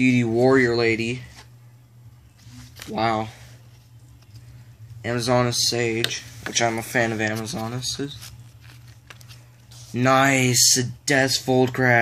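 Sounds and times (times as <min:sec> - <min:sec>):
steady low hum: 0:00.0 - 0:12.0
person speaking: 0:02.4 - 0:08.6, 0:09.7 - 0:12.0.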